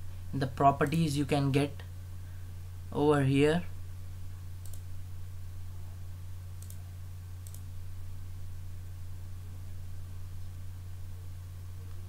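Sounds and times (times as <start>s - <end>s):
steady low hum: 0.0s - 12.0s
computer mouse clicks: 4.6s - 4.9s, 6.6s - 6.8s, 7.4s - 7.7s.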